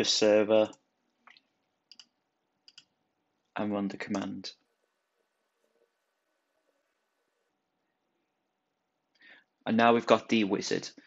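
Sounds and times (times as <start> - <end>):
computer mouse clicks: 0.6 - 3.0.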